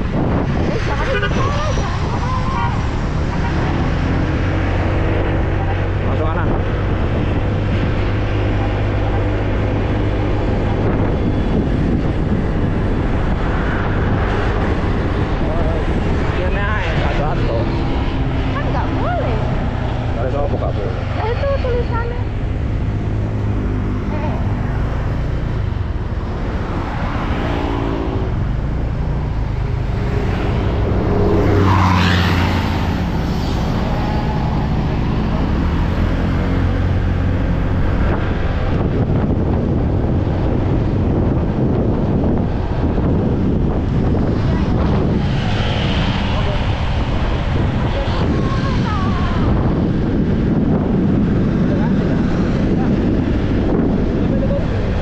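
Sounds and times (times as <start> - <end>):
road noise: 0.0 - 55.0
wind noise on microphone: 0.0 - 55.0.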